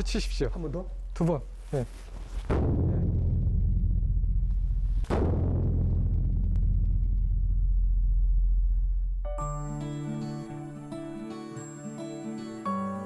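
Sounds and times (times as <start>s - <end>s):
large barrel drum booming: 2.5s - 8.8s.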